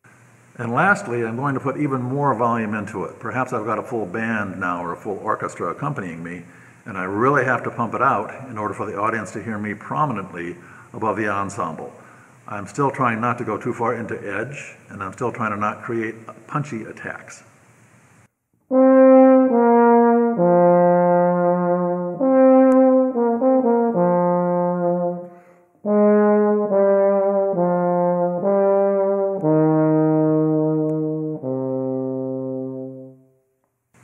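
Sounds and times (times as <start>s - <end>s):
solo euphonium playing: 18.7s - 33.5s.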